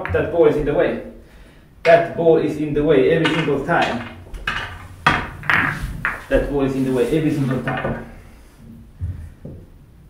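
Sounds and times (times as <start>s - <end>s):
pool balls clacking: 0.0s - 1.2s, 1.8s - 9.8s.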